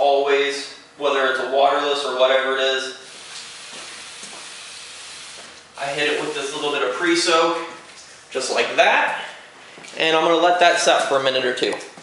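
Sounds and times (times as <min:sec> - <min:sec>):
pressure sprayer hissing: 0:03.0 - 0:06.8.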